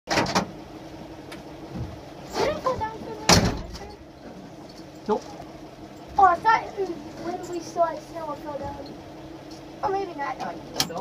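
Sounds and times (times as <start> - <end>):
car engine running: 0.1 - 11.0.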